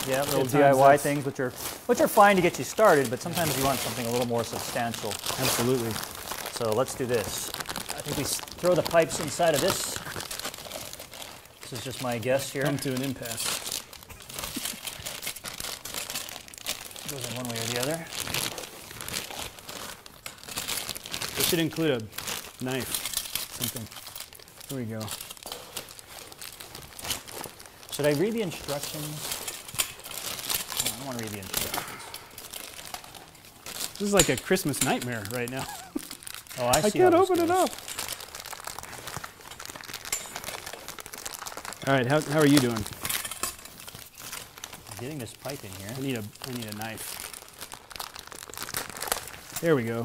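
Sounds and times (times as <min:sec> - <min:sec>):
plastic wrapping crinkling: 0:00.0 - 0:50.0
metallic fabric rustling: 0:25.0 - 0:47.3.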